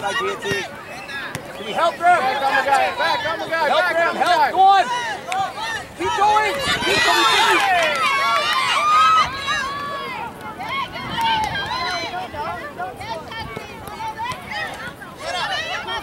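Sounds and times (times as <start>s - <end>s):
people shouting: 0.0s - 16.0s.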